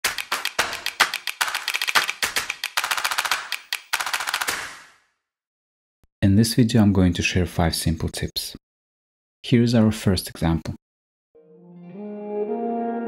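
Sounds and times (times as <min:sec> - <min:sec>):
rapid sharp clicking hits: 0:00.0 - 0:05.0.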